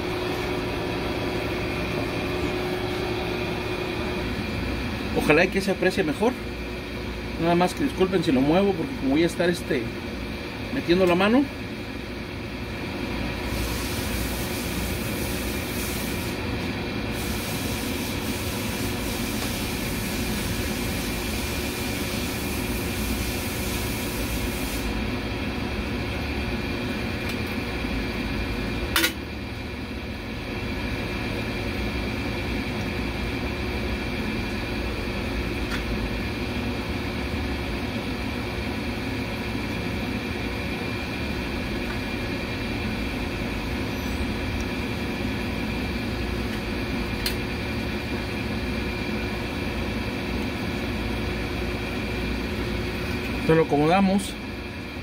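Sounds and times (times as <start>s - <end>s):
machinery humming: 0.0s - 14.1s, 16.3s - 55.0s.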